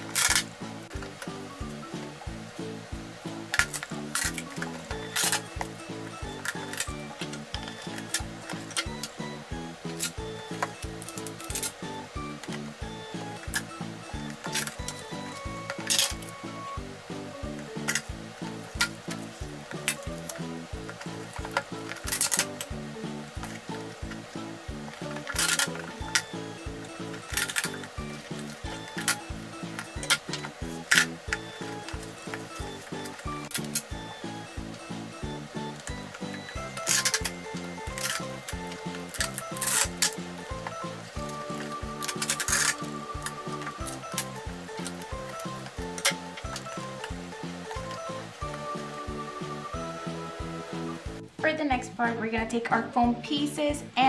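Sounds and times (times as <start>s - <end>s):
background music with beat: 0.0s - 54.0s
tape ripping off roll: 17.8s - 22.8s, 25.0s - 33.9s, 35.7s - 47.1s.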